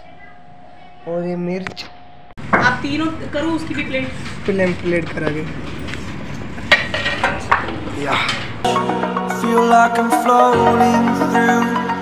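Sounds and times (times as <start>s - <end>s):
kitchen background noise: 2.4s - 8.6s.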